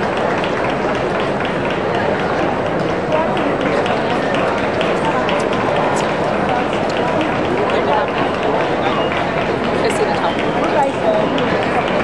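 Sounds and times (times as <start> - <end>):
babble of many voices: 0.0 - 12.0.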